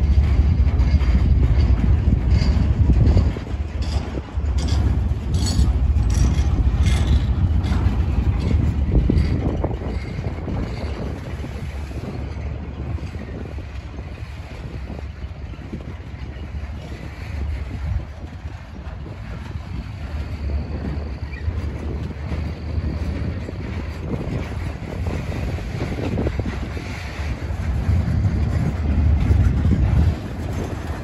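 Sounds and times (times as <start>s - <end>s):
clicks and clanks: 0.0s - 31.0s
freight cars rumbling past: 0.0s - 31.0s.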